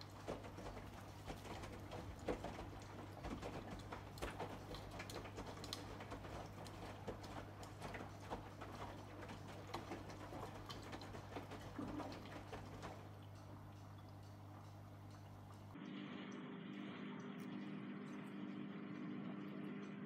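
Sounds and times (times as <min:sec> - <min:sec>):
washing machine drum tumbling laundry: 0:00.0 - 0:15.8
washing machine low hum: 0:00.0 - 0:20.0.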